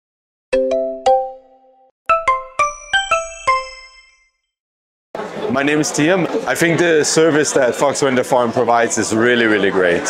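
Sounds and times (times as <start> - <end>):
bell-like chime jingle: 1.0 - 4.6.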